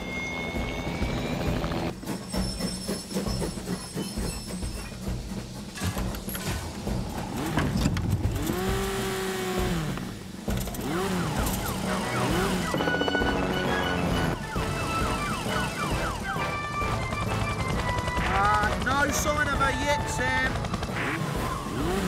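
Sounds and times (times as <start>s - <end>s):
background music: 0.0s - 22.0s
cartoon emergency siren: 11.2s - 18.4s.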